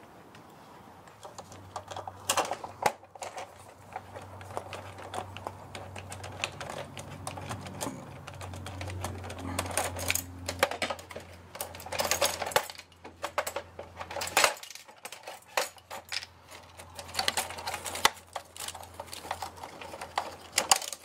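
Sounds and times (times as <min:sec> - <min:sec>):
plastic and metal parts rattling: 0:01.1 - 0:21.0.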